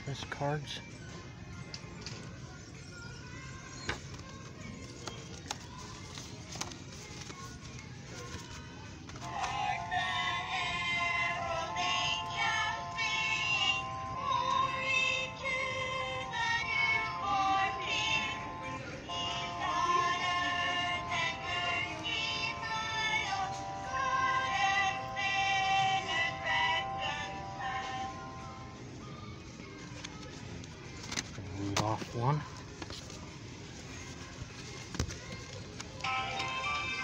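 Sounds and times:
singing card melody from small speaker: 0:09.2 - 0:29.0, 0:36.0 - 0:37.0.

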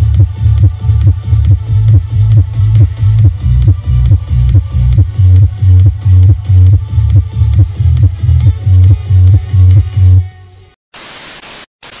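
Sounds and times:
electronic dance music: 0:00.0 - 0:10.3
tv static hiss: 0:10.9 - 0:12.0.

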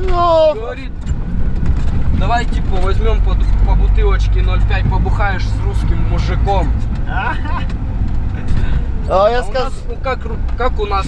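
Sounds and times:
vehicle engine and road rumble: 0:00.0 - 0:11.0.

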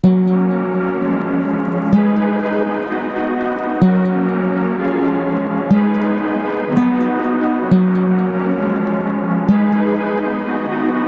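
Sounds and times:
synth pad sustained chords: 0:00.0 - 0:11.0.

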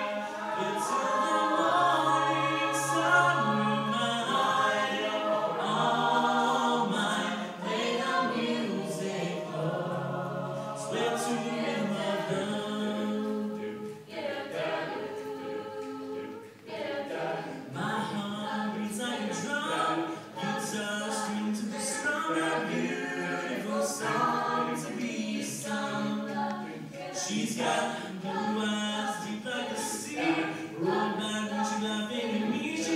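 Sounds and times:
choir singing a cappella: 0:00.0 - 0:32.9.

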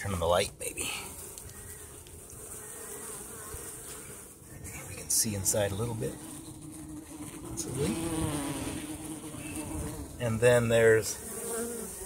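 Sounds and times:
bees buzzing: 0:00.1 - 0:12.0.

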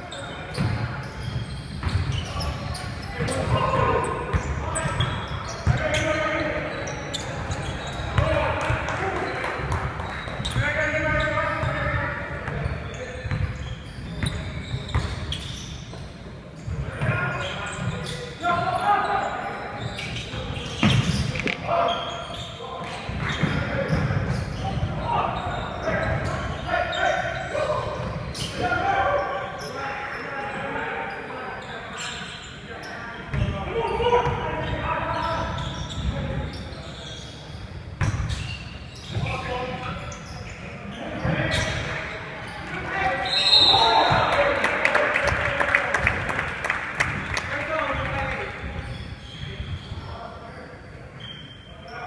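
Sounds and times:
players' voices echoing: 0:00.0 - 0:52.0.

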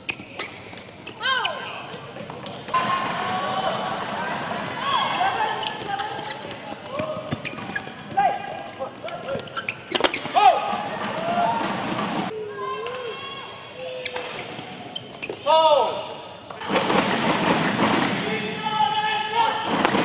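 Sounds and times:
shoes squeaking on court floor: 0:00.0 - 0:03.2, 0:04.1 - 0:13.1, 0:13.7 - 0:16.6
crowd cheering and shouting: 0:02.7 - 0:05.6, 0:10.4 - 0:13.8.

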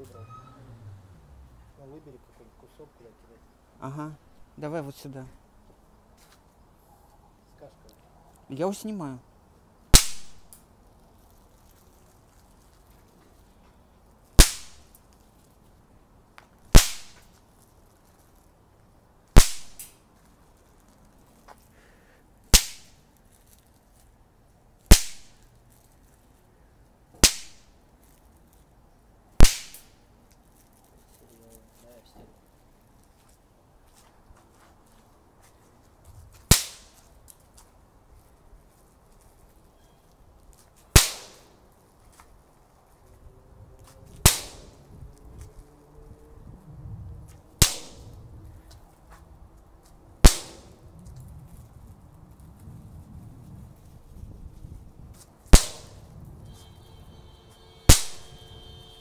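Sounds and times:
firecrackers cracking: 0:09.9 - 0:10.7, 0:14.3 - 0:15.1, 0:16.7 - 0:17.4, 0:19.3 - 0:20.1, 0:22.4 - 0:23.5, 0:24.8 - 0:25.5, 0:27.2 - 0:27.8, 0:29.4 - 0:30.1, 0:36.4 - 0:37.4, 0:40.8 - 0:41.6, 0:44.2 - 0:44.8, 0:47.6 - 0:48.2, 0:50.2 - 0:50.8, 0:55.5 - 0:56.1, 0:57.9 - 0:58.6.

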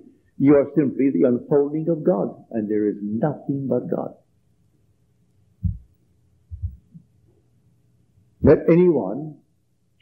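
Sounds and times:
low dull thumps: 0:05.6 - 0:07.1.

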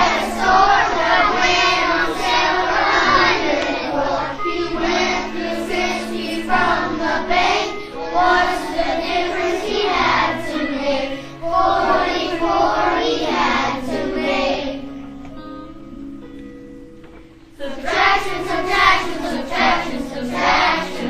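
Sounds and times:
children singing in unison: 0:00.0 - 0:15.0, 0:17.6 - 0:21.0
recorded backing track: 0:00.0 - 0:21.0.

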